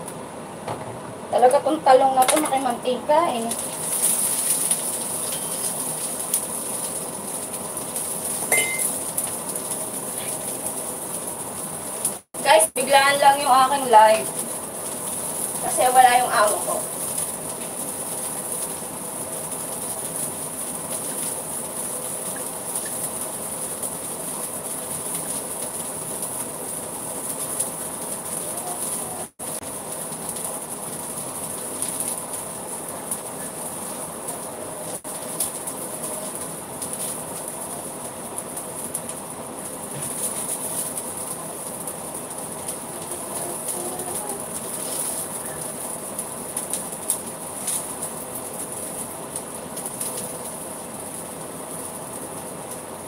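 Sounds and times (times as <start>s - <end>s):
food sizzling in oil: 1.2s - 53.0s
faint crackles: 1.5s - 53.0s.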